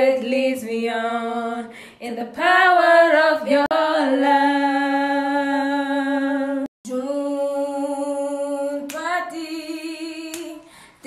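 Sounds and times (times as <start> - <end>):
woman singing unaccompanied: 0.0 - 10.7.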